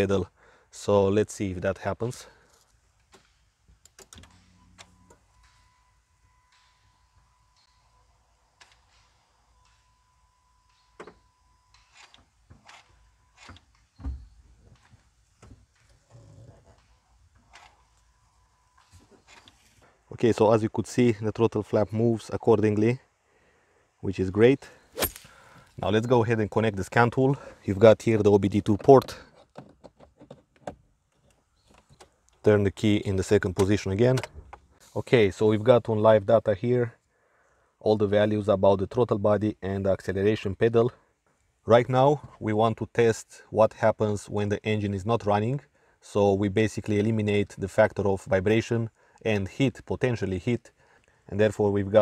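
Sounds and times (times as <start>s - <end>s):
thin steady whine: 4.3s - 11.9s.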